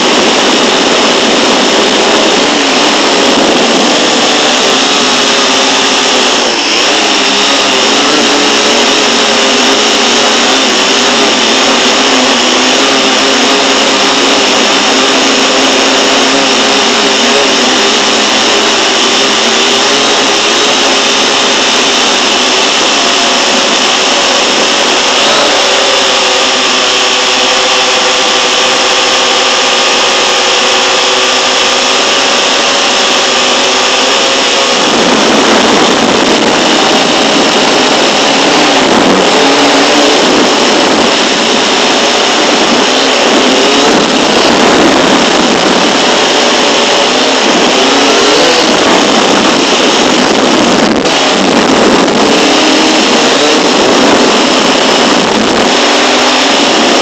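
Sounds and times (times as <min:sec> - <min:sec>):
drone propellers whining: 0:00.0 - 0:57.0.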